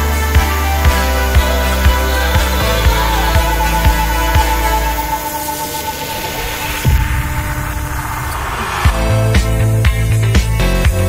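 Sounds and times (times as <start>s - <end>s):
sustained electronic hum tone: 0.0s - 10.3s
deep bass thumps: 6.8s - 11.0s.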